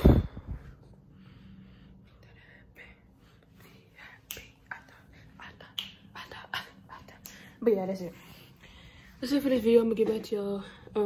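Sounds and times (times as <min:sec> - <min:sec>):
soft breathy sounds: 0:00.0 - 0:09.4.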